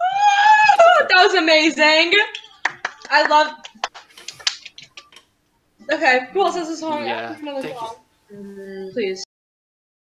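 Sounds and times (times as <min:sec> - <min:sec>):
small group applause: 0:02.3 - 0:05.2.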